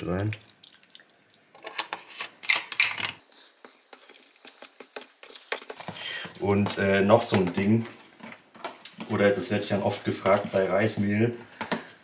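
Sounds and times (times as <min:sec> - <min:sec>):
spoon scraping plastic tub: 0:03.6 - 0:08.4.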